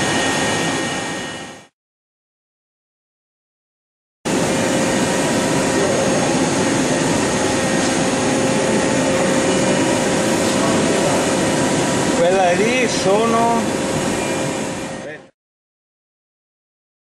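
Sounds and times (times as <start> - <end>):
lathe mechanical whir: 4.3 - 15.3
steady machine tones: 4.3 - 15.3.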